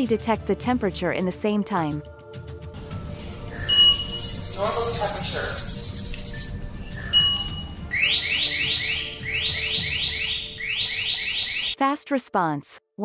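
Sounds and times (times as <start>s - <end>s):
short electronic beep: 3.5s - 4.3s, 7.0s - 11.0s
electronic alarm chirps: 3.5s - 4.4s, 6.9s - 11.8s.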